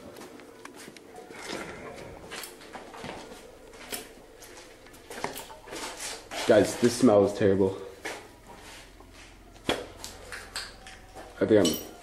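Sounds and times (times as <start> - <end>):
low muffled voices: 0.0 - 8.3.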